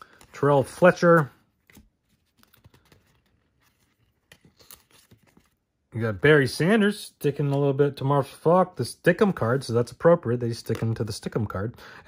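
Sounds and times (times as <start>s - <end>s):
cardboard cards clicking and rustling: 0.0s - 5.7s, 10.5s - 11.4s.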